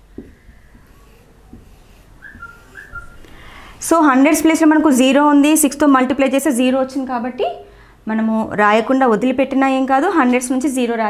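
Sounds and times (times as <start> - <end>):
marker tapping on whiteboard: 0.1 - 2.8
marker squeaking: 0.2 - 3.3.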